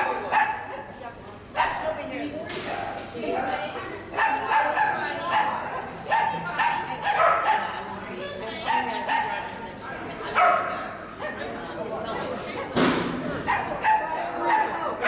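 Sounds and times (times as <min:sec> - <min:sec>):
dog barking in high yips: 0:00.0 - 0:01.0, 0:04.2 - 0:07.7, 0:13.5 - 0:15.0.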